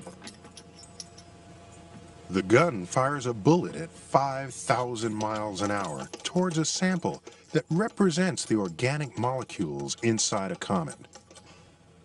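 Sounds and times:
faint metallic clinks: 0:00.0 - 0:01.9
low steady hum: 0:00.0 - 0:12.0.

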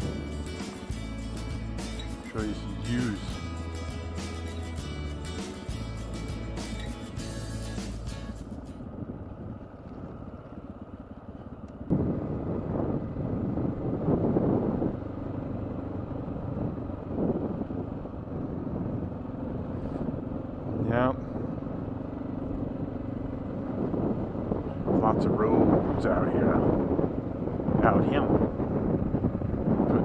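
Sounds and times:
motorcycle engine running: 0:00.0 - 0:30.0
wind and road noise: 0:00.0 - 0:30.0.

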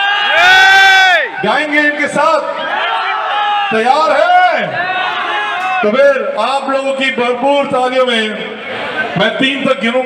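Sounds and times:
person speaking over public address: 0:01.3 - 0:02.7, 0:03.7 - 0:04.8, 0:05.8 - 0:08.6, 0:09.2 - 0:10.0
crowd noise hiss: 0:08.2 - 0:10.0.

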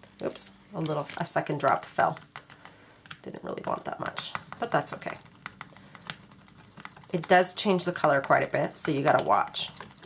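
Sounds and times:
tool tapping plastic palette: 0:01.0 - 0:10.0.

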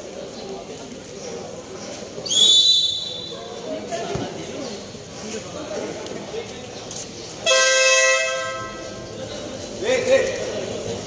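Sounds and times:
crowd chatter: 0:00.0 - 0:11.0
referee's whistle blast: 0:02.3 - 0:03.4.

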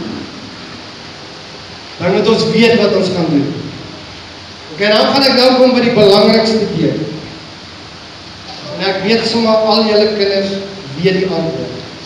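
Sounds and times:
background hiss: 0:00.0 - 0:12.0
speech: 0:02.0 - 0:03.6, 0:04.7 - 0:07.2, 0:08.5 - 0:11.8.

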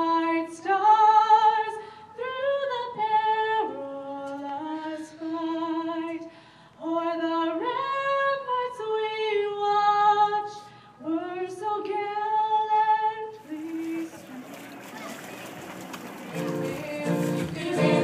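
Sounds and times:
woman singing solo: 0:16.3 - 0:18.0.

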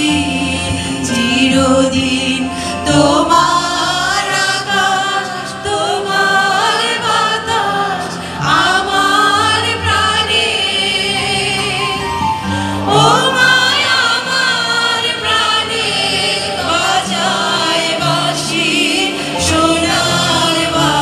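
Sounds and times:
women singing into microphones: 0:00.0 - 0:21.0.

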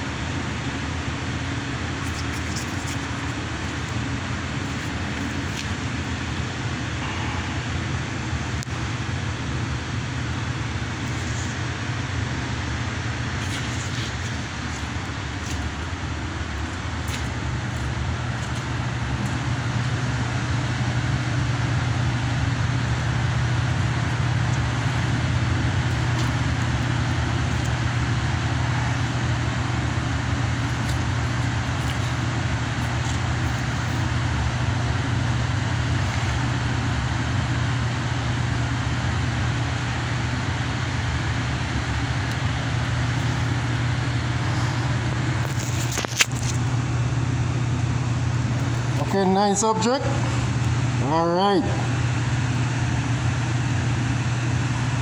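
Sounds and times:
machine drone with hiss: 0:00.0 - 0:55.0.

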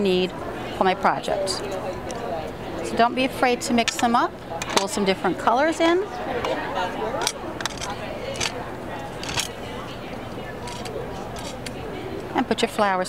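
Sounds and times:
background chatter: 0:00.0 - 0:13.0
clicks and rustles on tabletop: 0:07.2 - 0:08.6, 0:09.2 - 0:09.5, 0:10.6 - 0:11.8.

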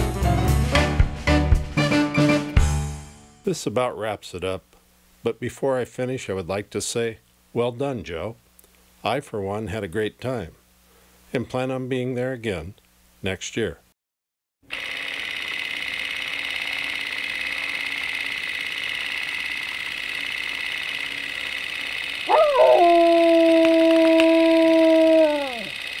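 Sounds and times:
dog howling: 0:22.3 - 0:25.8.

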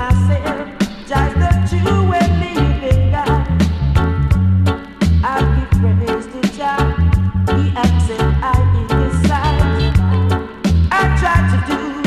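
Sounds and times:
steady drum beat: 0:00.0 - 0:11.7
reggae bass line: 0:00.0 - 0:12.0.

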